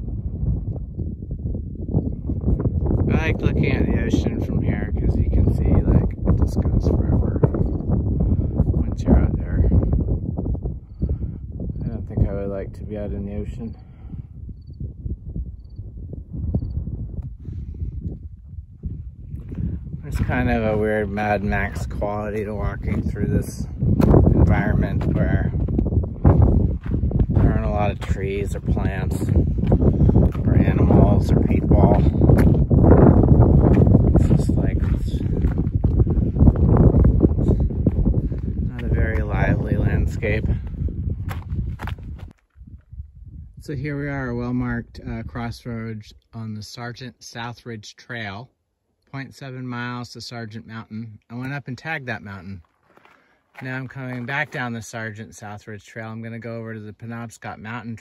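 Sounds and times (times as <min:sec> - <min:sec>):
low rumble: 0:00.0 - 0:45.7
wind buffeting microphone: 0:00.0 - 0:46.2
footsteps on gravel: 0:19.4 - 0:42.8, 0:51.4 - 0:55.0.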